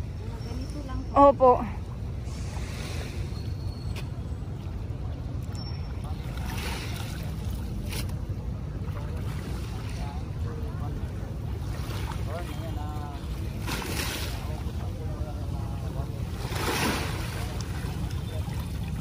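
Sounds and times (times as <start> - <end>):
small waves lapping: 0.0 - 19.0.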